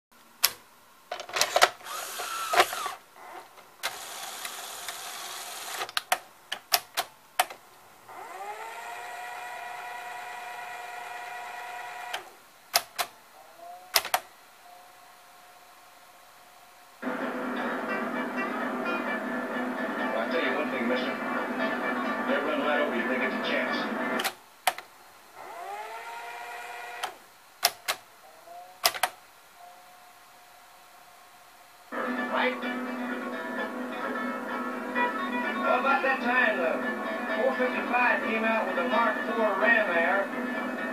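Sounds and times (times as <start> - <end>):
mechanical clicks and clunks: 0.4 - 7.6, 11.9 - 13.2, 13.9 - 14.3, 24.2 - 24.9, 26.9 - 28.1, 28.8 - 29.2
motors whining and humming: 1.8 - 5.9, 8.0 - 14.2, 25.4 - 29.0
music: 14.6 - 24.2, 29.6 - 31.0, 31.7 - 40.9
voices: 17.0 - 24.3, 31.9 - 40.9.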